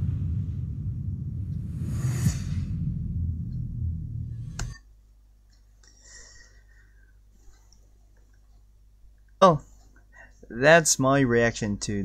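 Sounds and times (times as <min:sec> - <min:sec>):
sharp hit: 0:00.0 - 0:04.9
deep cinematic rumble: 0:00.0 - 0:05.2.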